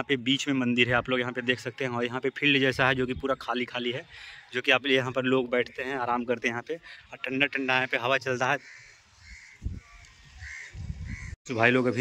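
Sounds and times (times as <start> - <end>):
bird cawing: 8.4 - 11.4
wind rumbling on microphone: 9.2 - 11.4.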